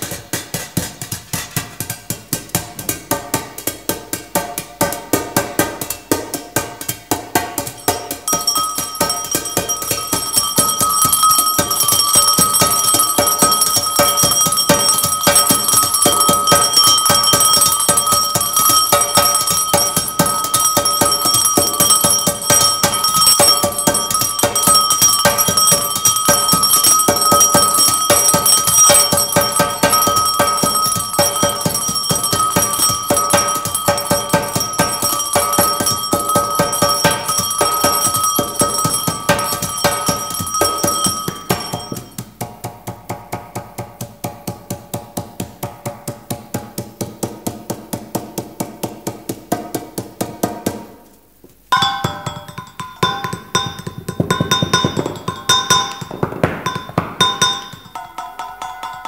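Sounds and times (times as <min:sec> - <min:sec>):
cymbals and metal bowls ringing: 0:02.8 - 0:42.4, 0:51.7 - 0:59.0.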